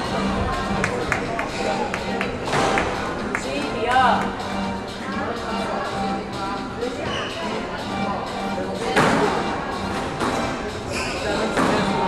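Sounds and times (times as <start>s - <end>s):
squash racket hitting ball: 11.5s - 12.0s.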